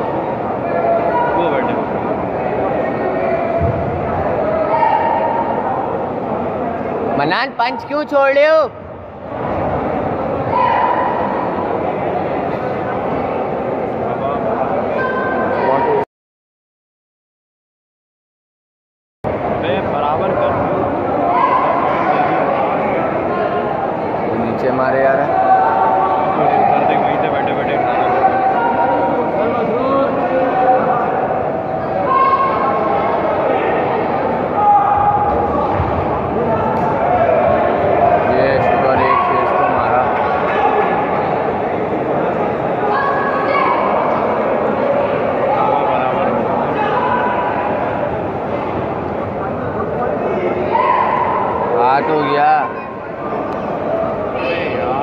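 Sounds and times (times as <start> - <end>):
voices calling out in hall: 0.0 - 16.1, 19.3 - 55.0.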